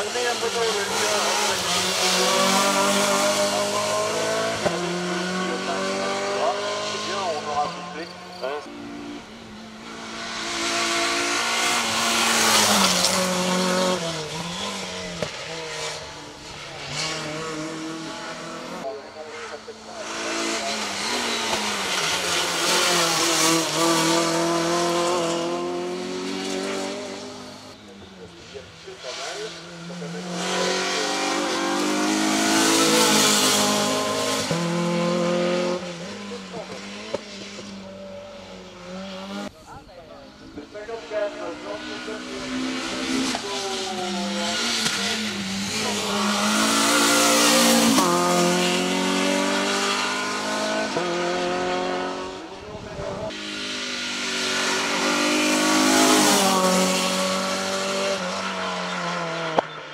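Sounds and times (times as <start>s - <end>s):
race car engine at full throttle: 0.0s - 59.9s.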